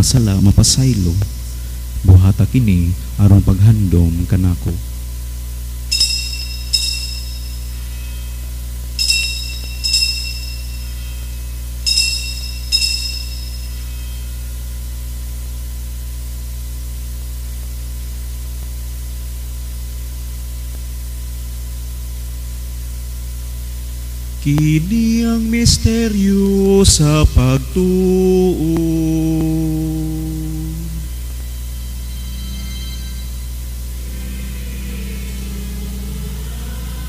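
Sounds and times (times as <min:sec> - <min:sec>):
low electrical hum: 0:00.0 - 0:37.0
altar bells ringing: 0:05.9 - 0:14.7, 0:31.7 - 0:33.8.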